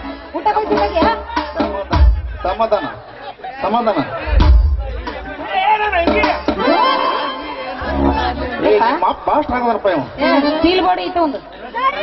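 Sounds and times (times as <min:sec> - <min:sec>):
actors' voices over loudspeakers: 0:00.0 - 0:12.0
music playing: 0:04.3 - 0:10.5.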